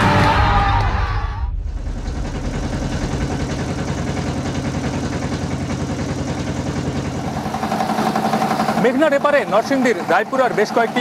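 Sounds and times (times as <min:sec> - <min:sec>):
motorboat engine pulsing: 0:01.6 - 0:11.0
water rushing along hull: 0:01.9 - 0:11.0.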